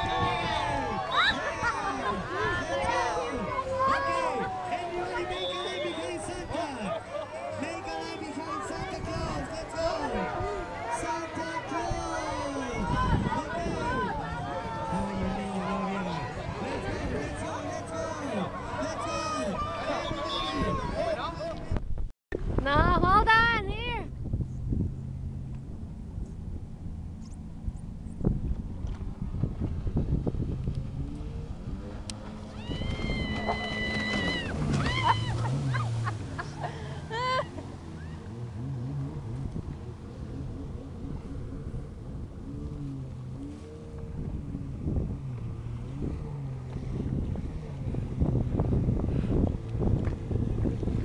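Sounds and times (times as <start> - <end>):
wind on microphone: 0.0 - 5.3, 8.5 - 51.0
jet ski engine: 0.0 - 21.7, 22.7 - 51.0.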